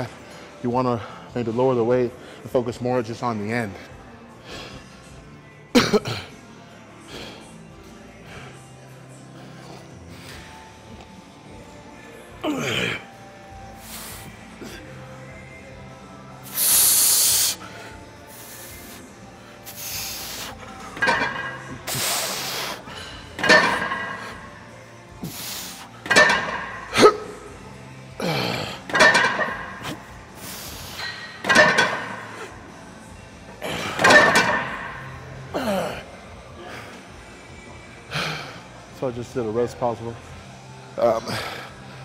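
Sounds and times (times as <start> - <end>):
man grunting: 12.4 - 13.1, 35.5 - 36.1.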